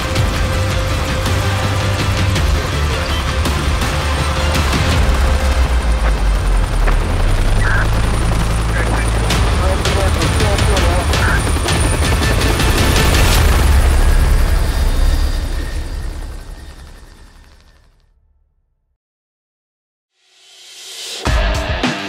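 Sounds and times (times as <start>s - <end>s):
helicopter rotor and engine drone: 0.0s - 18.0s.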